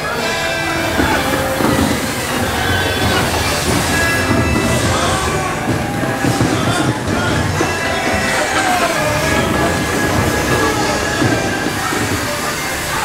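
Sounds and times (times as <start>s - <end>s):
ride vehicle rumble: 0.0s - 13.0s.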